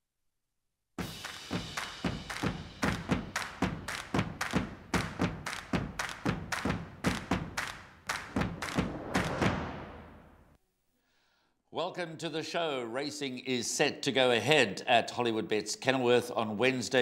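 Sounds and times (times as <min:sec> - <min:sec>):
music with heavy percussive hits: 0:01.0 - 0:07.6, 0:08.2 - 0:10.0.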